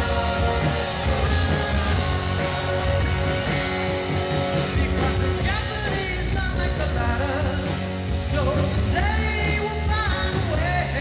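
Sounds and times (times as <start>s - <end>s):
live rock band playing: 0.0s - 11.0s
male lead vocal: 0.0s - 11.0s.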